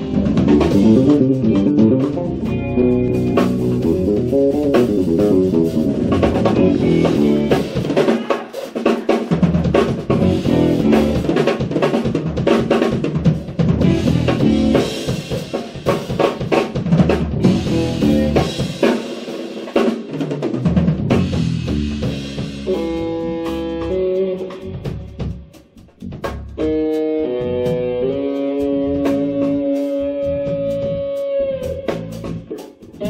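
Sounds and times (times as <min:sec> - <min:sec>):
electric basses: 0:00.0 - 0:08.0, 0:09.3 - 0:19.3, 0:20.4 - 0:33.0
drum kit: 0:00.0 - 0:33.0
electric guitar: 0:00.0 - 0:33.0.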